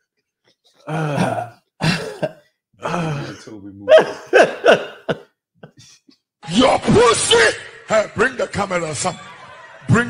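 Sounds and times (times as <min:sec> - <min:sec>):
person coughing: 0:00.9 - 0:05.8.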